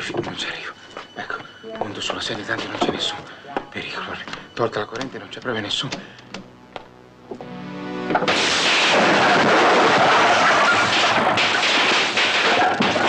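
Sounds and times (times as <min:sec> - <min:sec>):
electrical hum rising: 0:00.7 - 0:10.3
sparks crackling and popping: 0:08.0 - 0:13.0.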